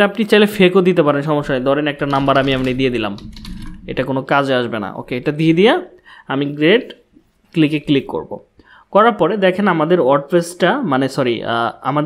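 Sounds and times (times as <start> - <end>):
computer keyboard typing: 1.4 - 4.2.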